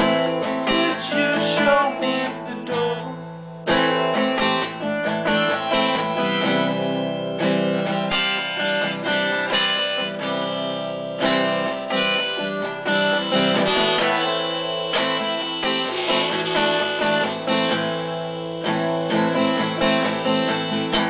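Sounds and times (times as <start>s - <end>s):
acoustic guitar strumming: 0.0s - 21.0s
harmonica playing: 0.0s - 21.0s.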